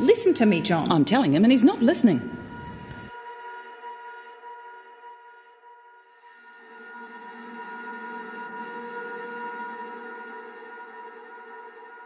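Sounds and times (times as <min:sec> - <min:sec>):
ambient drone of held tones: 0:00.0 - 0:04.5, 0:06.2 - 0:12.0.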